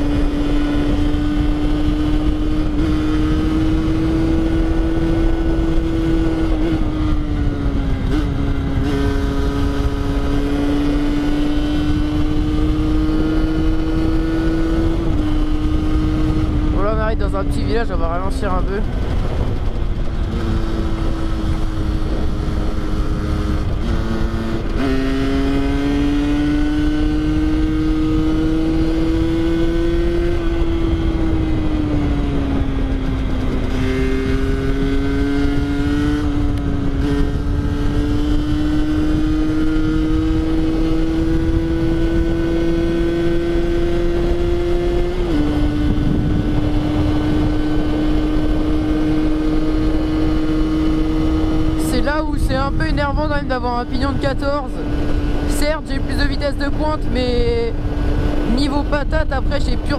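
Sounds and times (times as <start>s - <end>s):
two-stroke engine running: 0.0s - 59.9s.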